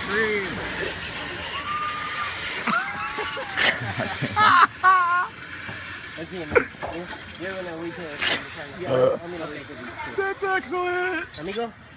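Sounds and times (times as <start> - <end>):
people talking and calling out: 0.0 - 11.9.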